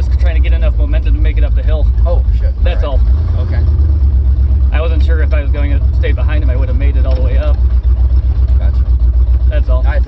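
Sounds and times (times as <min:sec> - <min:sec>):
voices: 0:00.0 - 0:03.8, 0:04.6 - 0:10.0
tyres on dirt road: 0:00.0 - 0:10.0
vehicle engine rumble: 0:00.0 - 0:10.0.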